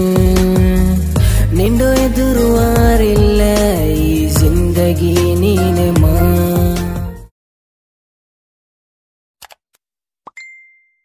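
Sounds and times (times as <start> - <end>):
bell-like ding: 10.3 - 11.0.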